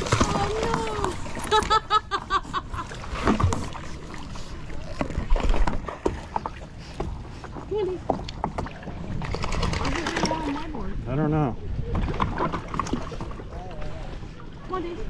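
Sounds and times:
water splashing and dripping: 0.0s - 1.9s, 2.8s - 10.9s
dog shaking off water: 9.2s - 10.6s.

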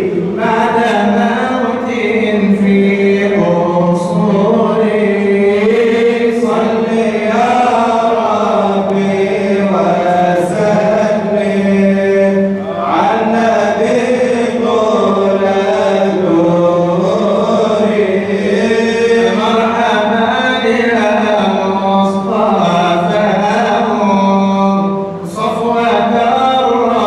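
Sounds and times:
man chanting: 0.0s - 27.0s.

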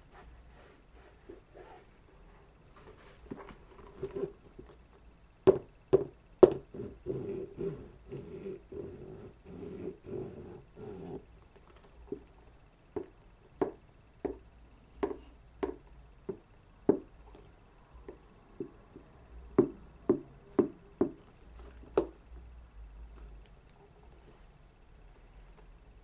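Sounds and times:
boots tapped: 5.5s - 6.7s, 13.0s - 14.4s, 15.0s - 17.1s, 18.0s - 22.2s.

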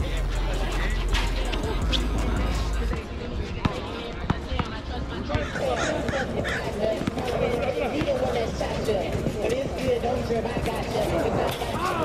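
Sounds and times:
music with heavy bass: 0.0s - 3.0s
basketball bouncing on asphalt: 2.8s - 9.8s.

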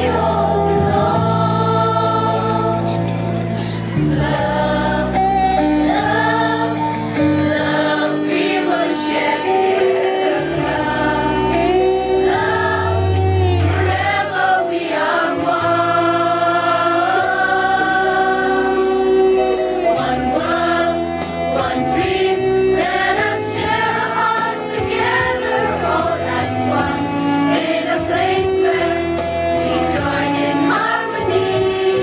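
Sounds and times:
children's choir singing: 0.0s - 3.0s, 3.6s - 32.0s.

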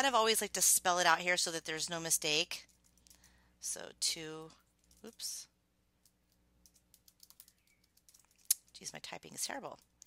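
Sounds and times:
keyboard typing: 6.0s - 8.4s.

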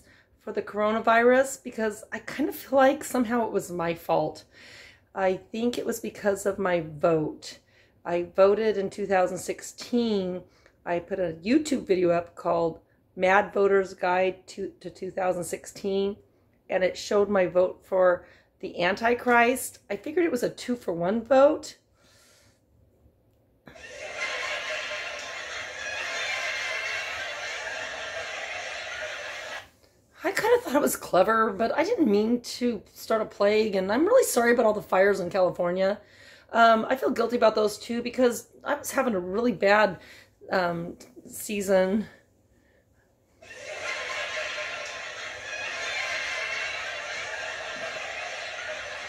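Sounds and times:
studio audience laughter: 23.7s - 29.7s, 43.4s - 49.0s.

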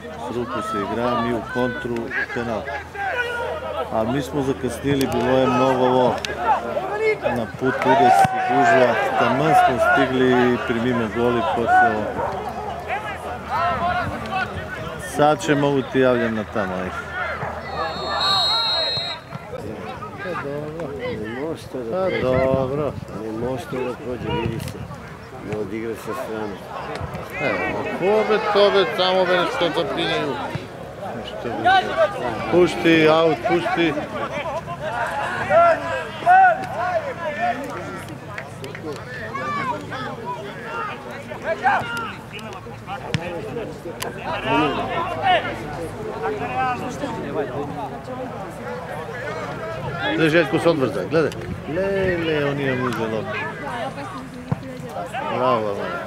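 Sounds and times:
men talking: 0.0s - 54.1s, 55.0s - 56.0s
players and onlookers calling: 0.0s - 56.0s
referee whistle blast: 17.6s - 19.4s.

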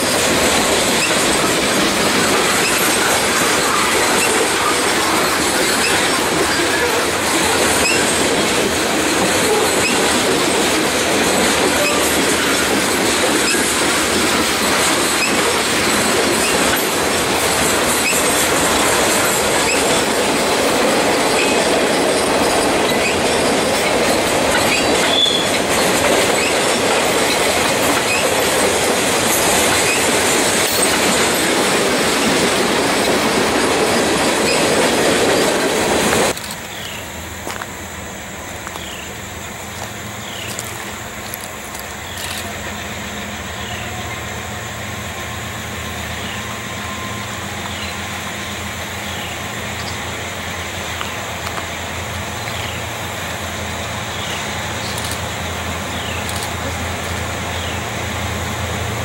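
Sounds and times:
high wheel squeals: 0.0s - 37.6s, 38.4s - 59.0s
freight train wheels rumbling: 0.0s - 59.0s.

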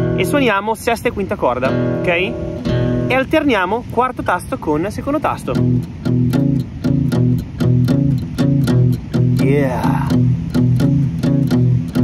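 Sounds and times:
acoustic guitar blues shuffle: 0.0s - 12.0s.

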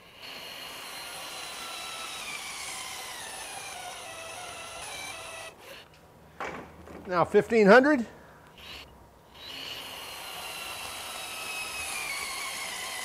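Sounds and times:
battery torque wrench running: 0.0s - 5.9s, 8.5s - 13.0s.

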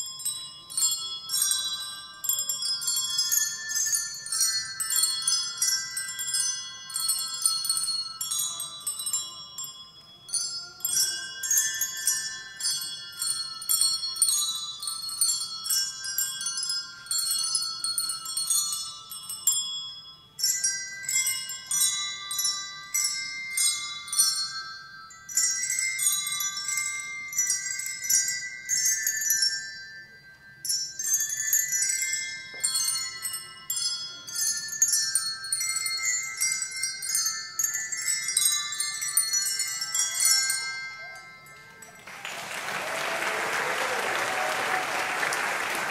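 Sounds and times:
handbells playing a melody: 0.0s - 45.9s.

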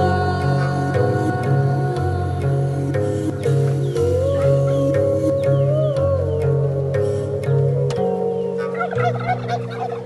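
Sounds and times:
turkey gobbling: 8.6s - 10.0s.

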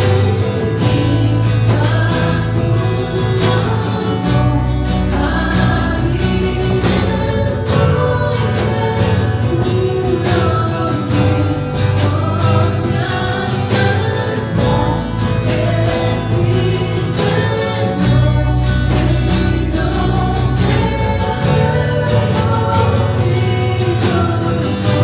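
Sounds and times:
deep bass notes: 0.0s - 25.0s
drums: 0.0s - 25.0s
guitars: 0.0s - 25.0s
woman singing: 0.0s - 25.0s.

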